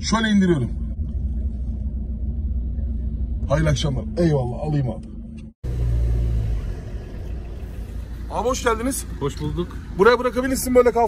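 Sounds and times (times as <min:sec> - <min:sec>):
car engine rumble inside cabin: 0:00.0 - 0:11.0.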